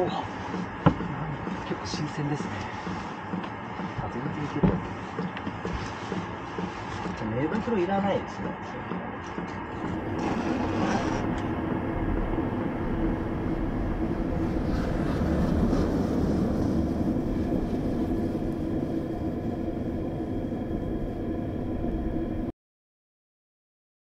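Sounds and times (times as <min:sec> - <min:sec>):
faint steady hum: 0:09.2 - 0:22.5
wind rumbling on microphone: 0:09.4 - 0:22.5.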